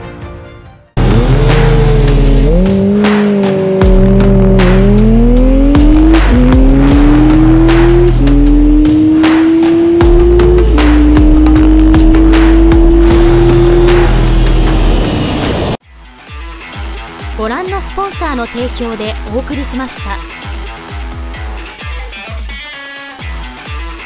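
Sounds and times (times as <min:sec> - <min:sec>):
background music with steady beat: 0:00.0 - 0:24.0
motorcycle engine accelerating: 0:01.0 - 0:15.8.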